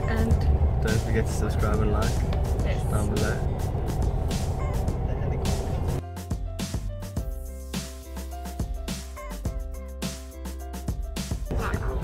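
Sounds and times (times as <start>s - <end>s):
bus engine rumble: 0.0s - 6.0s
road noise: 0.0s - 6.0s.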